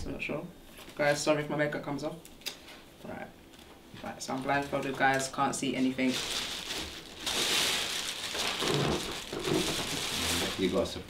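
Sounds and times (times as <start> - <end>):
rustling crackling noise: 3.5 - 11.0.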